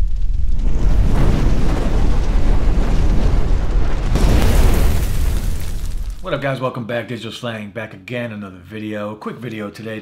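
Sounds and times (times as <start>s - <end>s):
deep explosion rumble: 0.0s - 6.4s.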